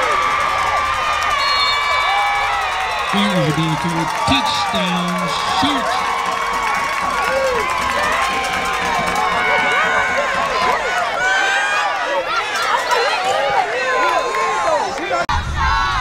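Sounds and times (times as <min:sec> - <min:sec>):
crowd cheering and shouting: 0:00.0 - 0:16.0.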